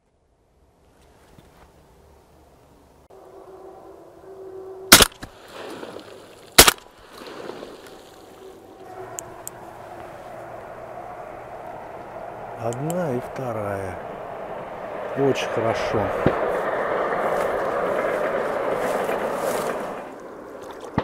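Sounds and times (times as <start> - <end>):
shotgun shots: 4.9 - 5.3, 6.6 - 6.8.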